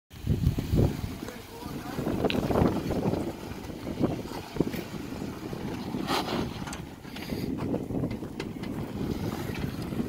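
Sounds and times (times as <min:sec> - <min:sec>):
gusty wind on microphone: 0:00.1 - 0:10.0
off-road vehicle engine running low: 0:00.2 - 0:10.0.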